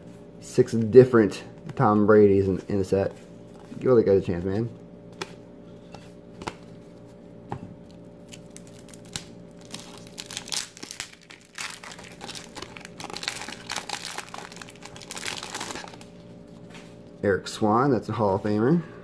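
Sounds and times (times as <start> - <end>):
card wrapper tearing and crinkling: 7.9 - 16.2.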